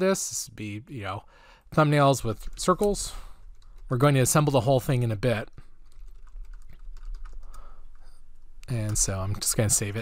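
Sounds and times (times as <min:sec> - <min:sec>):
computer keyboard typing: 0:05.8 - 0:08.1.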